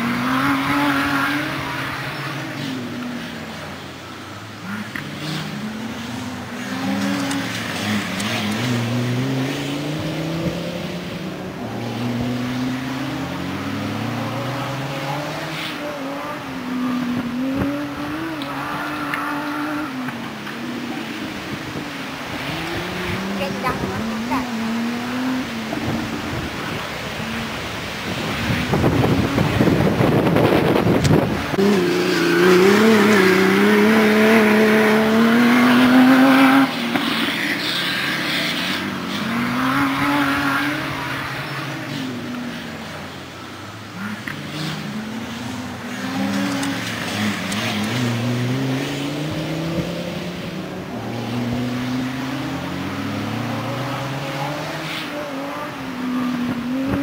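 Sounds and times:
off-road engine revving: 0.0s - 3.7s, 4.5s - 57.0s
rough rushing noise: 20.2s - 43.2s.

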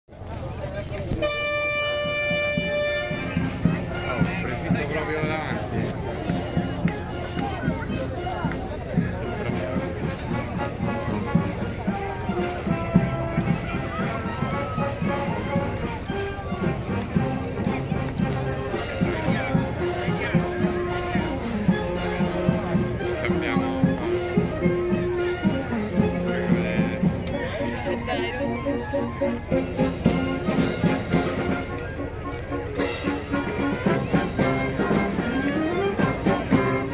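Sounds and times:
crowd talking: 0.1s - 36.9s
band playing brass notes: 1.0s - 36.9s
horn blast: 1.1s - 5.3s.

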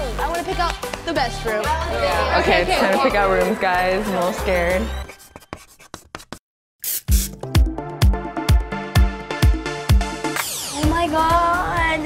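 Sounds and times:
theme music: 0.0s - 5.1s, 7.1s - 12.0s
short hiss: 6.8s - 7.4s.

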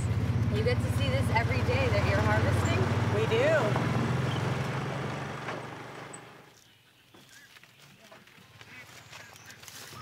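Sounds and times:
utility vehicle engine running: 0.0s - 6.5s.

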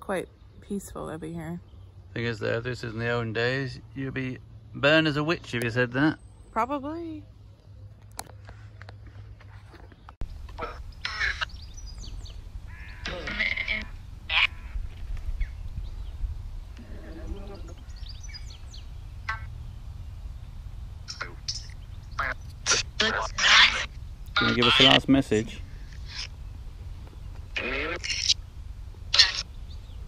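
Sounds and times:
steady low rumble: 10.2s - 30.0s.

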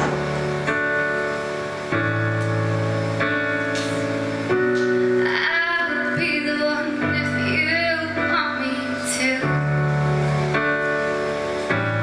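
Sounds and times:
piano and acoustic guitar ballad: 0.0s - 12.0s
woman singing: 5.2s - 9.7s.

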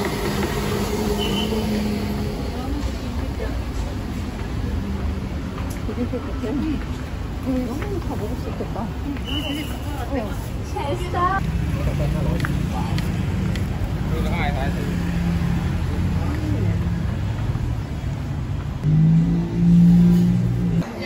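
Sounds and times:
vehicle engine humming: 0.0s - 9.2s, 10.8s - 21.0s
voices of passers-by: 0.0s - 21.0s.

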